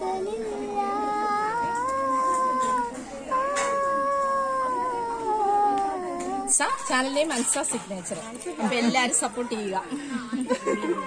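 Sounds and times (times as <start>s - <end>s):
girl singing: 0.0s - 6.9s.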